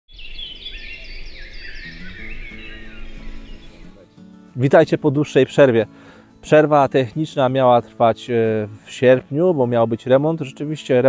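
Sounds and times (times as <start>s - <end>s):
small birds chirping: 0.1s - 4.6s
soft background music: 1.8s - 11.0s.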